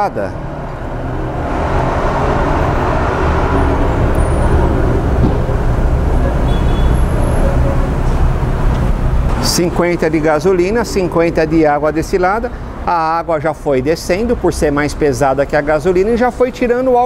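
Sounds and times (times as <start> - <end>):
road traffic rumble: 0.0 - 17.0
vehicle engines idling: 0.0 - 17.0.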